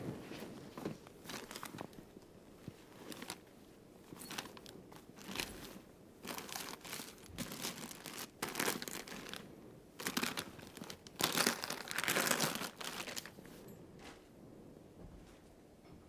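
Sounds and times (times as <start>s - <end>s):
bedding and clothing rustling: 0.0s - 15.8s.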